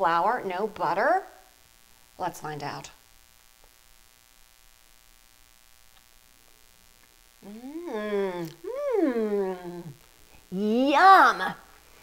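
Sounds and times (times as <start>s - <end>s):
woman humming mmm: 7.4s - 10.5s.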